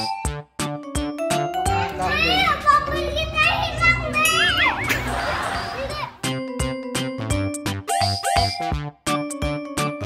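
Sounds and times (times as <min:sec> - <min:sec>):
background music: 0:00.0 - 0:10.0
children squealing: 0:01.9 - 0:06.2.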